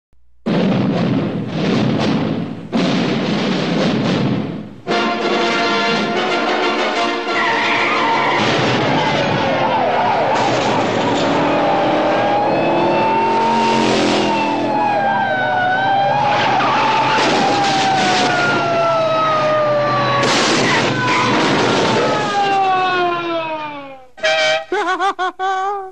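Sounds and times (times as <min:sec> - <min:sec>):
tyres screeching: 0:07.3 - 0:14.6, 0:19.9 - 0:22.3
racing car engines passing: 0:07.4 - 0:17.2.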